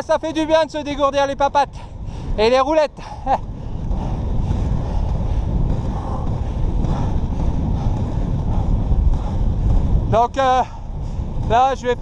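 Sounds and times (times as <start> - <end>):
wind buffeting microphone: 0.0 - 12.0
skate wheels rolling on asphalt: 0.1 - 12.0.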